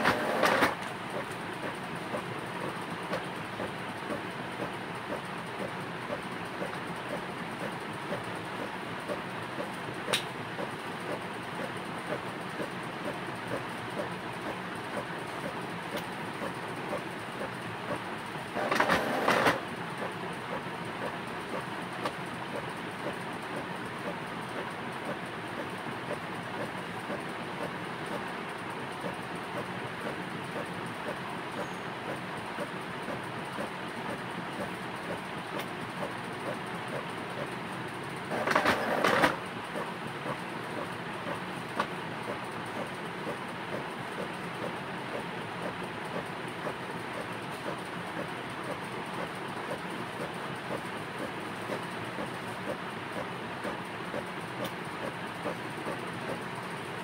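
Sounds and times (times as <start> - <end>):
steady background noise: 0.0 - 57.0.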